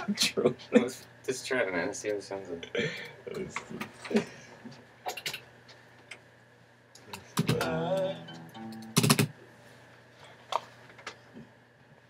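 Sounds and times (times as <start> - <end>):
quiet steady hum: 0.0 - 12.0.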